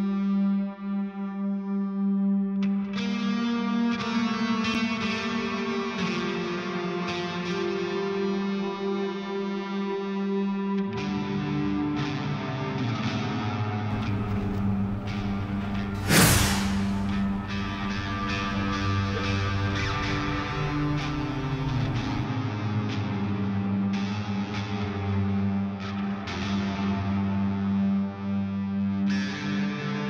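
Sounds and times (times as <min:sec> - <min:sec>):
film score droning notes: 0:13.9 - 0:16.0.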